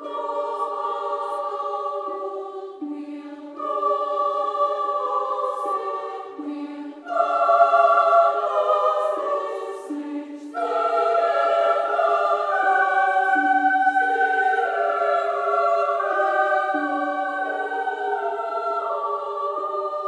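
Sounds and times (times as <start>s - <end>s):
women's choir singing: 0.0s - 20.0s.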